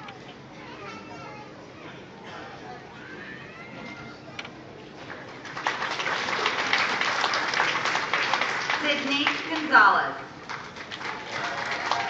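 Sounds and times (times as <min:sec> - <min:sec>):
audience applauding: 0:05.0 - 0:12.0.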